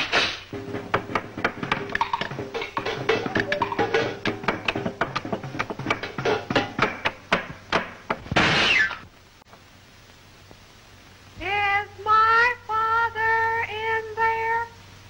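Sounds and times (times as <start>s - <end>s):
band music: 0.5s - 7.3s.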